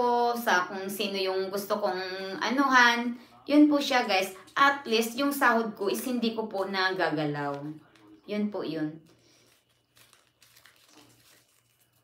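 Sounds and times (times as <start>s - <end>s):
paper crinkling: 9.0s - 12.0s.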